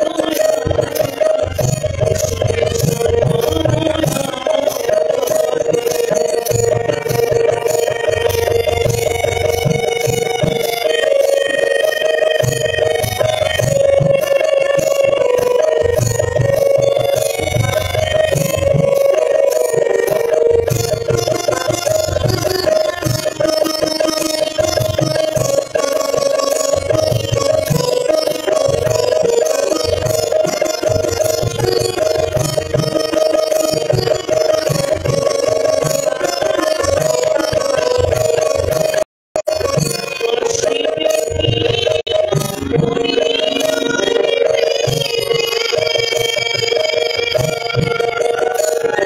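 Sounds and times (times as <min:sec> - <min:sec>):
harmonium playing devotional tune: 0:00.0 - 0:49.0
percussion ticking steady beat: 0:00.0 - 0:49.0.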